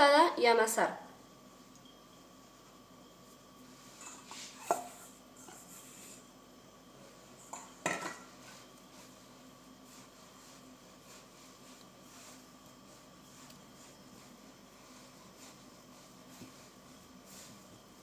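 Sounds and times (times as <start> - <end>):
spoon scraping metal bowl: 4.0 - 6.0.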